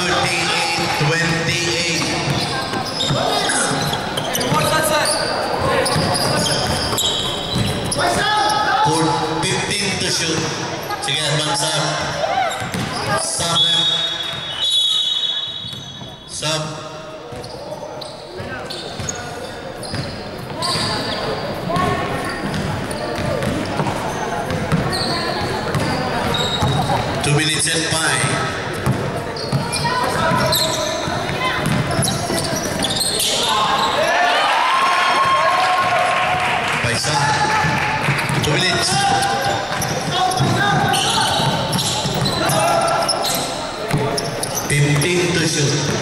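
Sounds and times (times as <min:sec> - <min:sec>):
people calling out and chattering: 0:00.0 - 0:46.0
basketball dribbling: 0:00.2 - 0:08.6, 0:12.0 - 0:13.2, 0:19.8 - 0:27.2, 0:28.2 - 0:33.9, 0:37.5 - 0:46.0.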